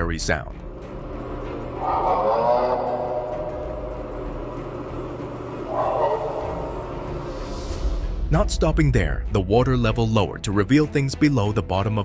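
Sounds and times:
low steady hum: 0.8s - 7.4s
wavering scream-like wails: 1.6s - 7.3s.

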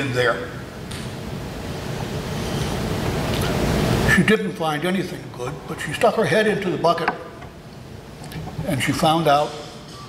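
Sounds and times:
voice: 0.0s - 0.4s, 4.1s - 7.2s, 8.6s - 9.6s.

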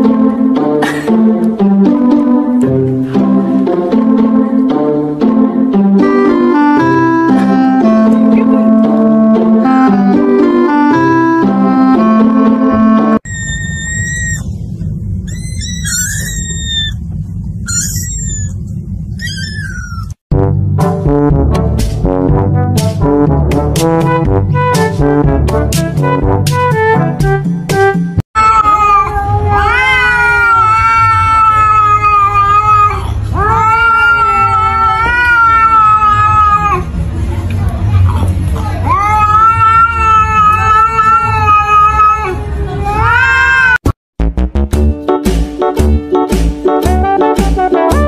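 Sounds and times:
cat yowling: 13.2s - 14.5s, 15.2s - 17.0s, 17.7s - 20.2s, 28.4s - 36.9s, 38.8s - 43.8s
kitten mewing: 13.3s - 14.5s, 15.3s - 17.0s, 17.7s - 20.2s, 28.4s - 36.9s
steady low rumble: 13.3s - 27.4s.

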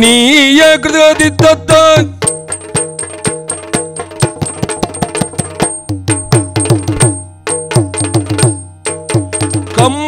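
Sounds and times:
drums struck with sticks: 1.1s - 10.0s.

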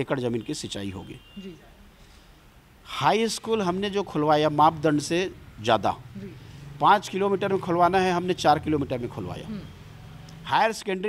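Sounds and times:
man speaking: 2.9s - 9.7s.

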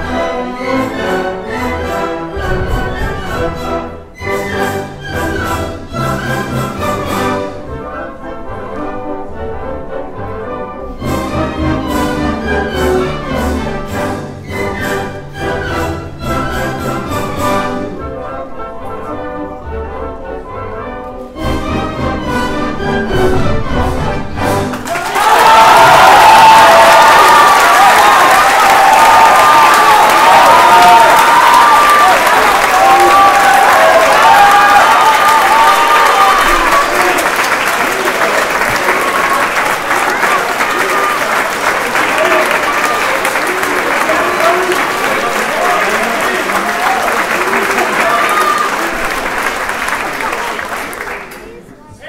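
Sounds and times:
audience applauding: 24.7s - 51.7s.

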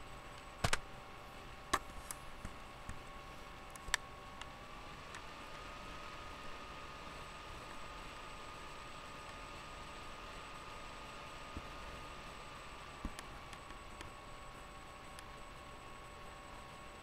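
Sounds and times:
faint high whine: 0.0s - 17.0s.

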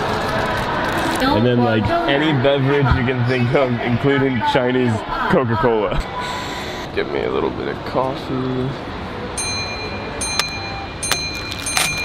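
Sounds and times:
station hall background noise: 0.0s - 12.0s
faint high steady tone: 9.4s - 12.0s.

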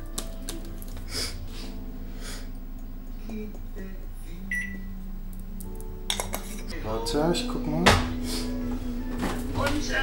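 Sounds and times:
microwave humming: 0.0s - 10.0s
microwave beep: 4.5s - 4.9s.

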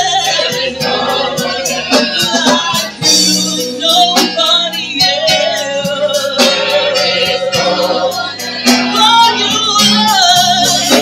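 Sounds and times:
gospel voices singing: 0.0s - 11.0s
instrumental backing with beat: 0.0s - 11.0s.

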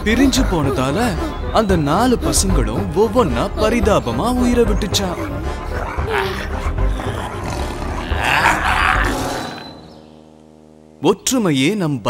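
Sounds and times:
background music: 0.0s - 12.0s
tiger roaring: 4.8s - 9.6s.

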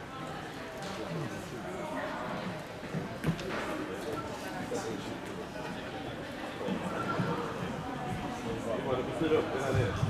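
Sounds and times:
hall background murmur: 0.0s - 10.0s.

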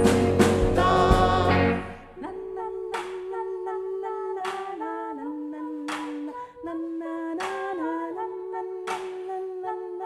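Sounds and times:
women humming in harmony: 0.7s - 10.0s.

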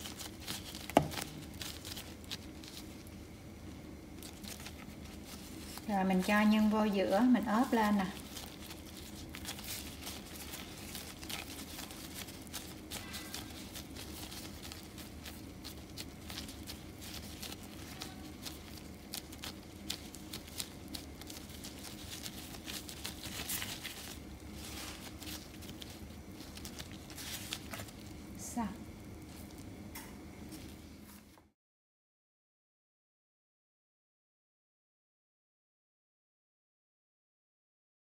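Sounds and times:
dough handling clicks and rustles: 0.0s - 31.5s
low steady hum: 0.0s - 31.5s.

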